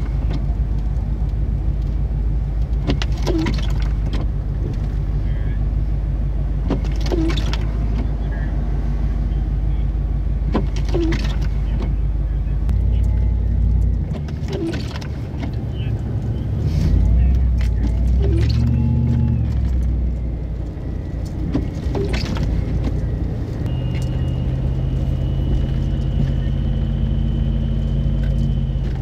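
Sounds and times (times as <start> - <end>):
car engine and road rumble: 0.0 - 29.0
windshield wipers sweeping: 0.0 - 29.0.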